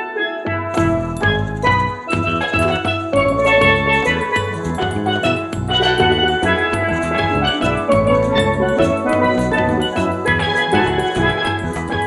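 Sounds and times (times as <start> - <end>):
drums steady beat: 0.5 - 12.0.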